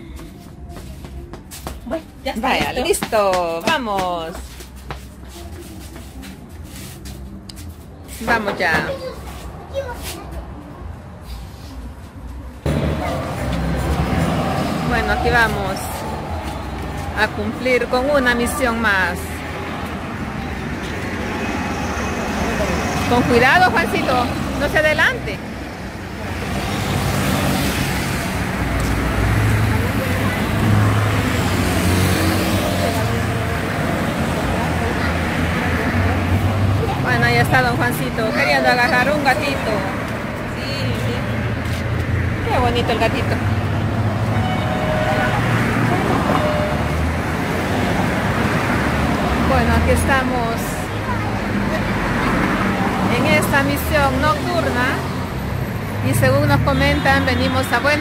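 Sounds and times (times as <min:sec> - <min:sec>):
faint voices: 0:00.0 - 0:55.1
road traffic rushing: 0:00.0 - 0:58.0
rumble of passing cars: 0:00.0 - 0:58.0.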